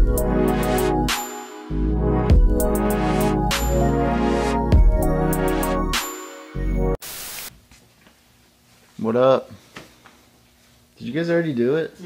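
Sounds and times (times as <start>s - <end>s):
hissing static burst: 7.0s - 7.5s.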